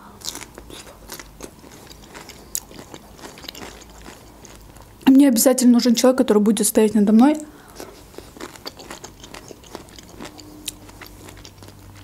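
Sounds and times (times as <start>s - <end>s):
chewing food: 0.2s - 5.0s, 7.4s - 12.0s.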